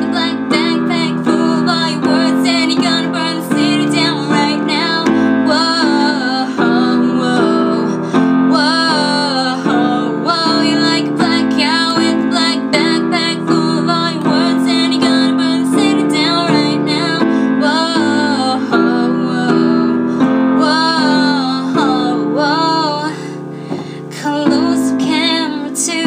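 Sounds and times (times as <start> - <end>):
held piano chords: 0.0 - 26.0
woman singing: 0.0 - 26.0.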